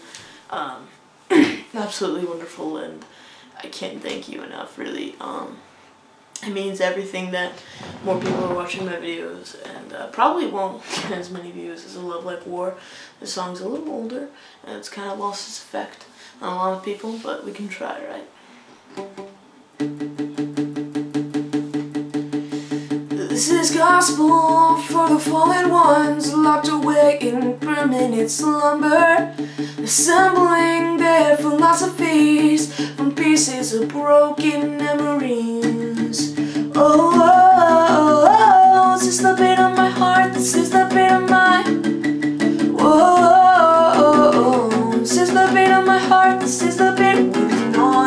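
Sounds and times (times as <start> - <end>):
acoustic guitar strumming: 18.9 - 48.0
person singing: 22.5 - 48.0.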